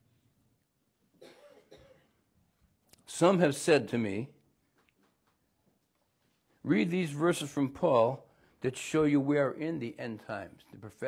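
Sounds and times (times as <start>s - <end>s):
person clearing throat: 1.2s - 2.2s.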